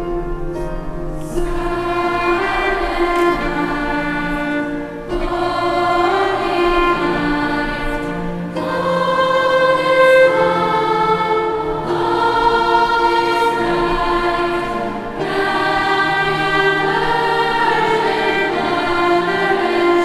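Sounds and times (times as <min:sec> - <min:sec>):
choir singing held notes: 0:00.6 - 0:20.0.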